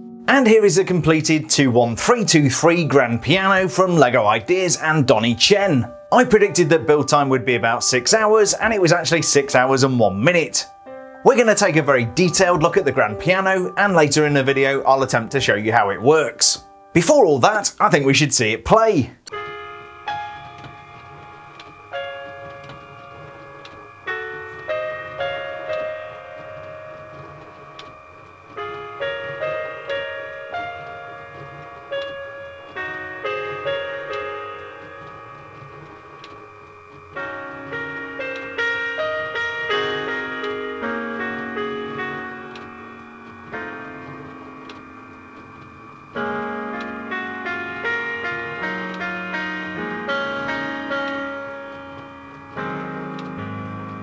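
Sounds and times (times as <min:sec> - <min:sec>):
solo piano chords: 0:00.0 - 0:54.0.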